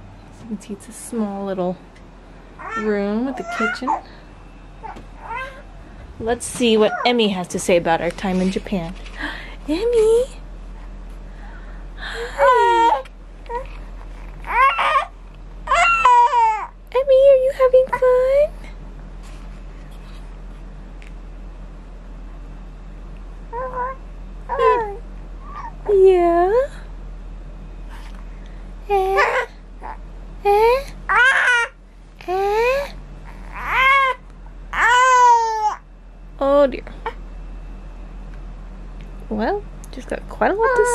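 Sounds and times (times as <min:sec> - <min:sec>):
newborn baby crying: 0:02.6 - 0:04.0, 0:12.3 - 0:15.1, 0:15.7 - 0:16.8, 0:28.9 - 0:35.8.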